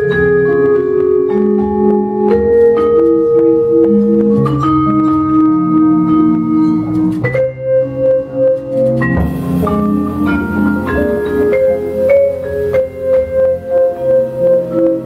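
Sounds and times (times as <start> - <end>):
guitar: 0.0 - 15.0
upright bass: 0.0 - 15.0
vibraphone chords: 0.0 - 15.0.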